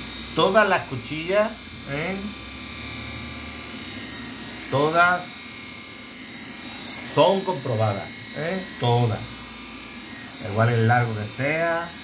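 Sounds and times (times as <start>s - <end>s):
electric clipper humming: 0.0s - 12.0s.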